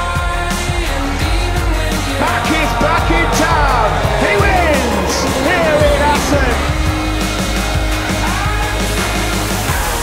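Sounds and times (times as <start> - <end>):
song with heavy low beat: 1.6 - 7.9
vocal sliding in pitch: 2.1 - 7.2.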